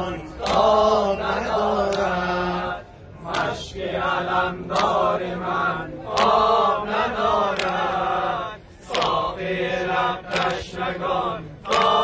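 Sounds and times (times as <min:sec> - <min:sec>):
men chanting a lament in unison: 0:00.0 - 0:12.0.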